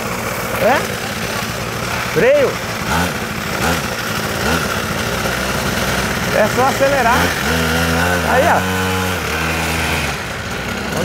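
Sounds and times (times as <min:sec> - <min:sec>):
small two-stroke engine idling: 0:00.0 - 0:11.0.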